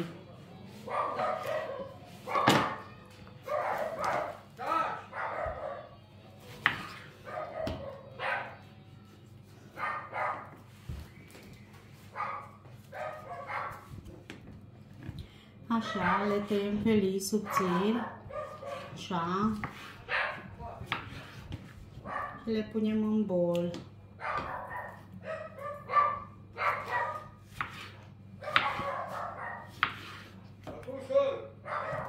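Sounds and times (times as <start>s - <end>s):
dogs barking: 0.9s - 6.0s, 7.2s - 8.6s, 9.7s - 10.6s, 12.1s - 14.0s, 15.8s - 16.5s, 17.4s - 19.0s, 20.0s - 21.0s, 22.0s - 22.5s, 24.2s - 27.4s, 28.4s - 29.9s, 31.6s - 32.0s.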